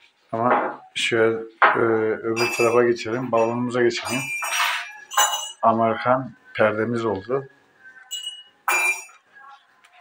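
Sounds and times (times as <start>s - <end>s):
beaded curtain clinking: 2.4s - 5.7s, 8.0s - 9.2s.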